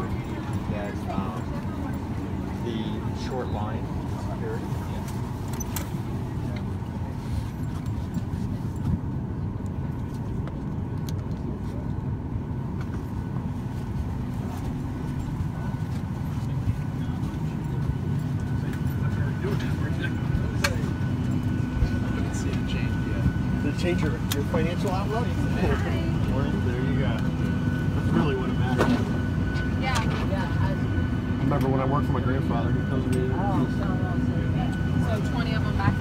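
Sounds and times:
cabin air system hum: 0:00.0 - 0:36.0
murmur of passengers: 0:00.0 - 0:36.0.

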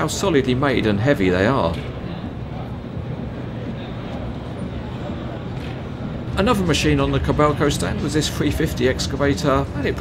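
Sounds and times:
faint voices of passers-by: 0:01.7 - 0:10.0.

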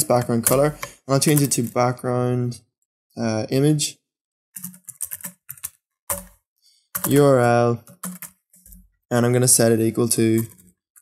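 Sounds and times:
computer keyboard typing: 0:00.1 - 0:01.8, 0:04.6 - 0:06.4, 0:07.0 - 0:08.9, 0:10.3 - 0:11.0.

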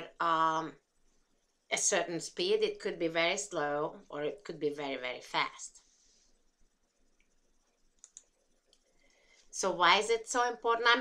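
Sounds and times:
computer mouse clicks: 0:07.2 - 0:08.9.

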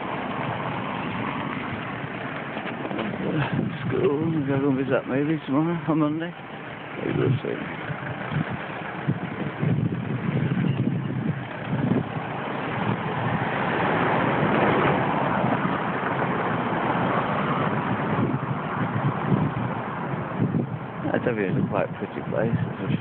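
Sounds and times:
car driving past: 0:06.8 - 0:20.6.

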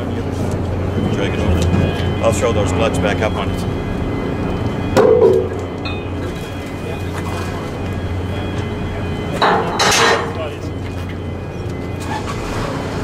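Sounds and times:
low hum of machinery: 0:00.0 - 0:13.0.

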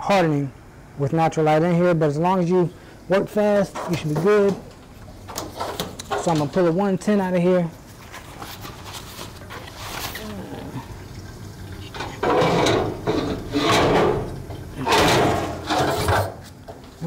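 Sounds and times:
plastic bag rustling: 0:07.8 - 0:11.1.

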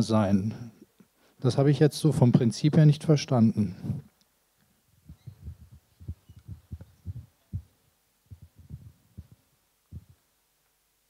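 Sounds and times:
microphone handling thumps: 0:03.7 - 0:04.1, 0:05.0 - 0:10.2.

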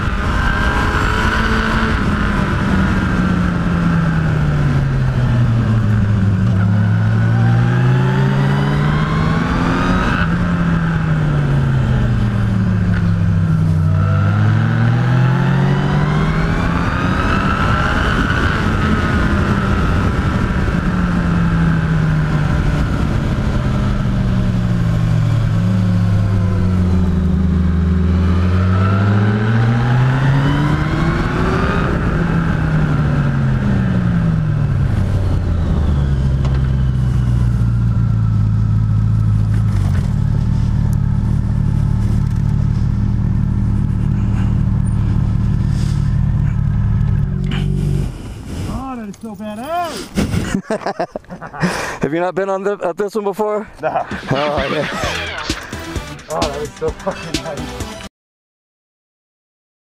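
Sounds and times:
motorcycle engine revving and idling: 0:00.0 - 0:49.9
wind rush: 0:14.4 - 0:25.3, 0:41.6 - 0:49.1.

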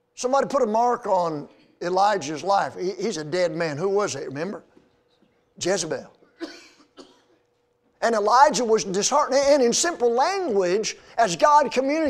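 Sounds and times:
person coughing: 0:06.2 - 0:07.4.

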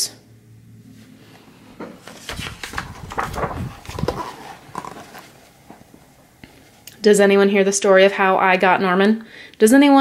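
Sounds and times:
paper page turning: 0:02.0 - 0:05.9.

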